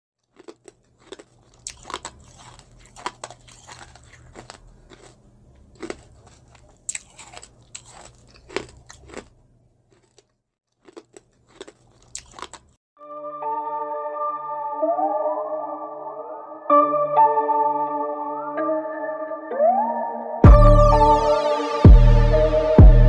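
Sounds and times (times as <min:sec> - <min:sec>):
person chewing crunchy food: 0:00.2 - 0:12.8.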